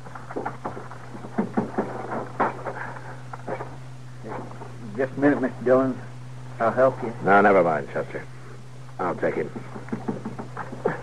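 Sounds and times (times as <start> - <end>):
low recording hum: 0.0 - 11.0.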